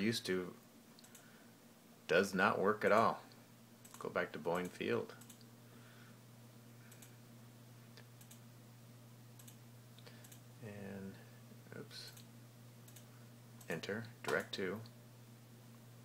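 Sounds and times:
steady low hum: 0:00.0 - 0:16.0
computer mouse clicks: 0:01.0 - 0:01.3, 0:04.6 - 0:05.5, 0:06.9 - 0:07.2, 0:08.2 - 0:08.4, 0:09.4 - 0:10.4, 0:12.9 - 0:13.7.

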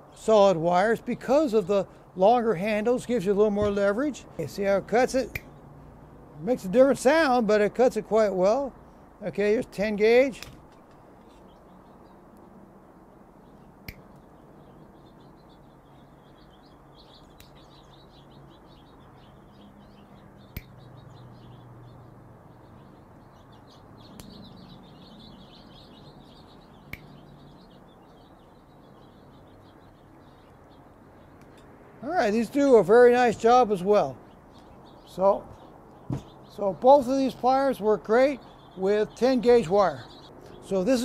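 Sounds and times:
faint birds chirping: 0:00.0 - 0:41.0.

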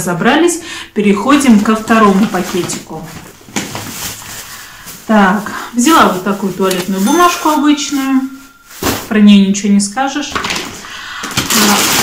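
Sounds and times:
plastic bag rustling: 0:01.4 - 0:09.5, 0:10.3 - 0:12.0.

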